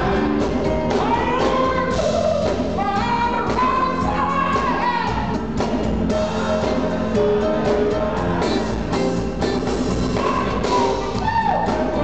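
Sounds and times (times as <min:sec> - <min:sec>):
drum kit: 0:00.0 - 0:12.0
keyboards: 0:00.0 - 0:12.0.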